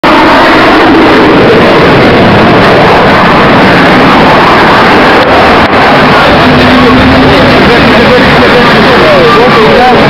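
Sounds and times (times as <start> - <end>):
jet engine roar: 0.0 - 10.0.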